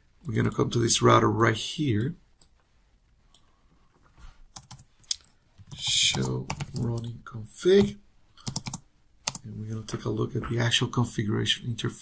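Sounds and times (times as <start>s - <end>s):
computer mouse clicks: 4.5s - 7.1s, 7.8s - 9.4s.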